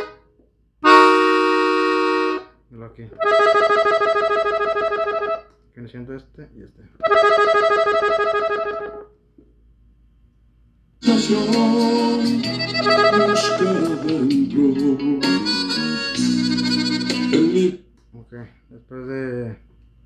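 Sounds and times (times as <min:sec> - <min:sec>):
button accordion chord: 0:00.0 - 0:02.6, 0:03.2 - 0:05.5, 0:07.0 - 0:09.1, 0:11.0 - 0:17.8
accordion melody with bass notes: 0:00.0 - 0:05.5, 0:07.0 - 0:09.1, 0:11.0 - 0:17.8.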